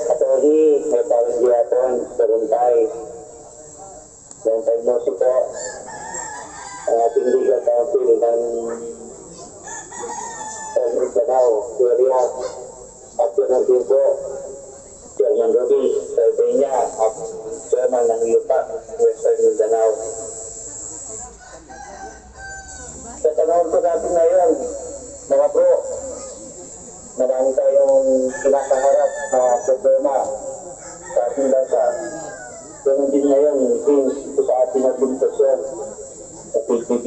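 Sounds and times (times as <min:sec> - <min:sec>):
rooster crowing: 0:05.4 - 0:08.2, 0:09.4 - 0:11.5, 0:20.9 - 0:25.3, 0:28.0 - 0:33.4.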